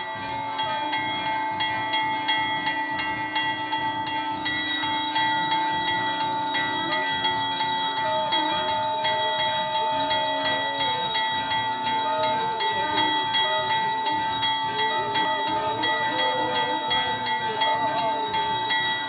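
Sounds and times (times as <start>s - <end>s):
temple bells ringing: 0.0s - 19.0s.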